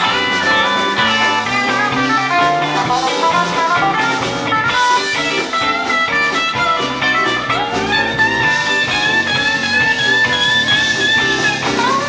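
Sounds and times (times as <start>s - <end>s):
bass guitar: 0.0s - 12.0s
drums: 0.0s - 12.0s
electric guitar lead note: 0.0s - 12.0s.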